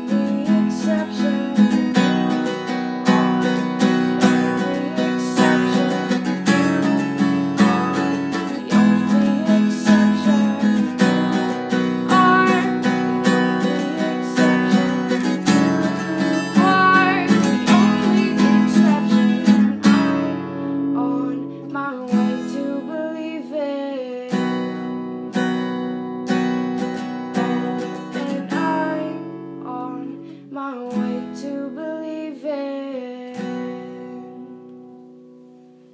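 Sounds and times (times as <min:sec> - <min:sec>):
woman singing: 0:00.0 - 0:25.0, 0:27.0 - 0:34.6
acoustic guitar strumming: 0:00.0 - 0:35.9.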